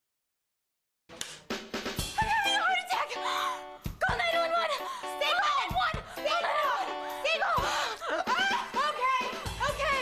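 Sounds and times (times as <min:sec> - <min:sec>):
snare drum beat: 0:01.1 - 0:02.2.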